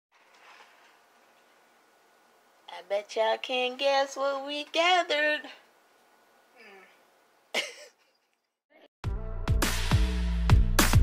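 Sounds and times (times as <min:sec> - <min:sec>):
person coughing: 0:07.6 - 0:08.0.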